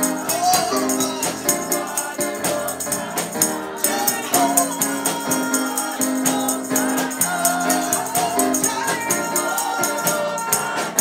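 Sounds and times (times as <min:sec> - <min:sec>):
congregation singing: 0:00.0 - 0:11.0
jingling percussion beat: 0:00.0 - 0:11.0
keyboard chords: 0:00.0 - 0:11.0.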